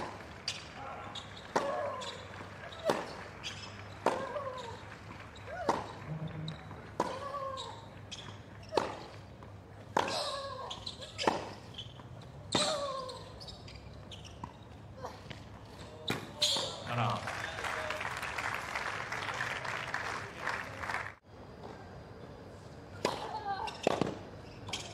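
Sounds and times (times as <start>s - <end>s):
tennis ball bouncing on court: 1.4s - 4.8s, 5.4s - 10.4s, 23.0s - 24.9s
racket striking ball: 1.5s - 2.0s, 4.0s - 4.4s, 8.7s - 9.1s, 23.0s - 24.2s.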